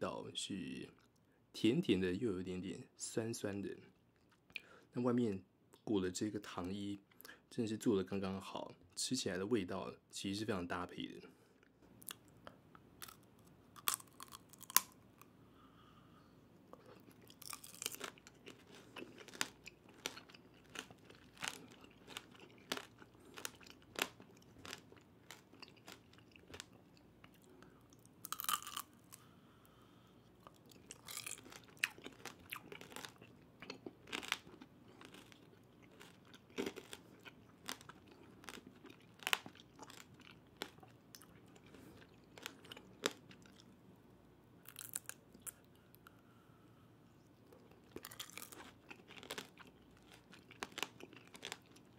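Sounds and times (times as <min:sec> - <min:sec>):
candy shell crunching: 0:13.0 - 0:15.0, 0:16.8 - 0:26.8, 0:28.2 - 0:29.2, 0:30.5 - 0:41.7, 0:44.6 - 0:45.6, 0:47.8 - 0:51.9
wet chewing: 0:16.8 - 0:27.5, 0:47.6 - 0:51.9.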